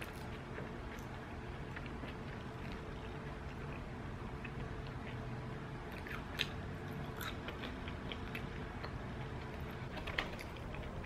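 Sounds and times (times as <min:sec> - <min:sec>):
chewing crispy tortilla chips: 0:00.0 - 0:09.8.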